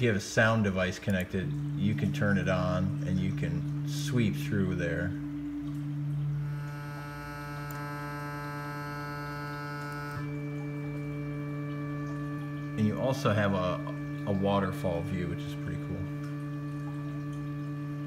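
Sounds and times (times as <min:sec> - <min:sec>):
synthesizer drone: 0:00.8 - 0:18.0.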